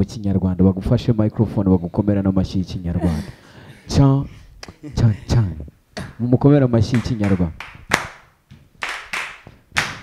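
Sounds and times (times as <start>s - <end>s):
hand claps: 6.9s - 10.0s.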